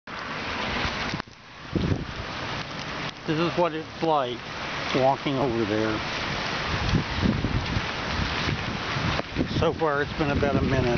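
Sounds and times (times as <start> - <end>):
rain hiss: 0.1 - 10.9
wind buffeting microphone: 0.7 - 10.9.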